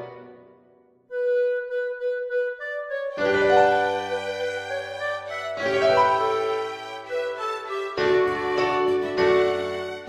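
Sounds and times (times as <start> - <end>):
tango ensemble playing: 0.0 - 0.5, 1.3 - 10.0.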